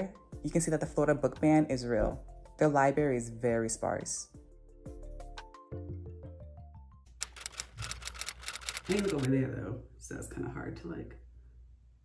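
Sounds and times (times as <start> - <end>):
eyebrow pencil clicks and scratches: 7.2 - 9.3.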